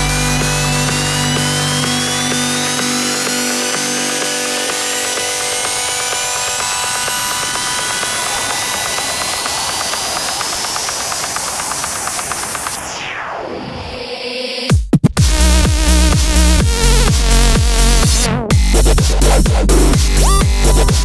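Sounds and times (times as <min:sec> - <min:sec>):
dense noisy synth texture: 0:00.0 - 0:14.0, 0:15.2 - 0:21.0
falling synth sweep: 0:00.0 - 0:14.2
rising synth sweeps: 0:00.0 - 0:14.3.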